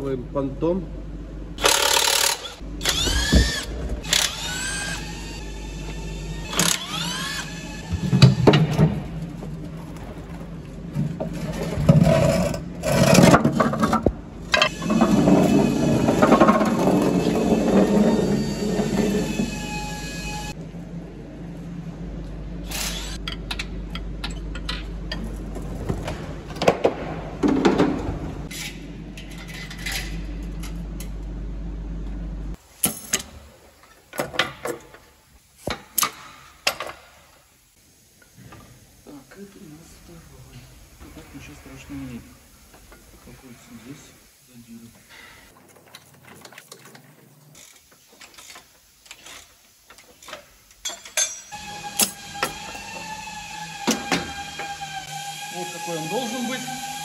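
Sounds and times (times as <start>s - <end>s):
power wrench whirring: 1.6s - 8.3s, 22.7s - 23.2s, 51.6s - 57.0s.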